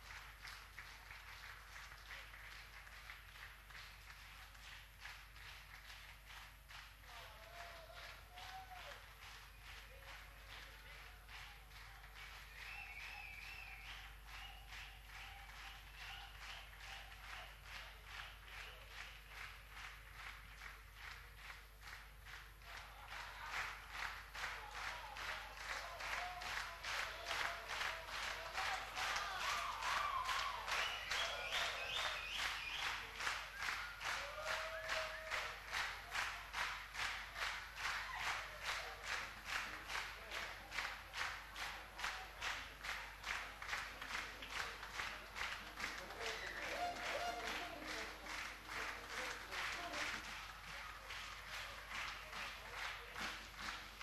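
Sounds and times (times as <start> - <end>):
audience clapping in unison: 0.0 - 54.0.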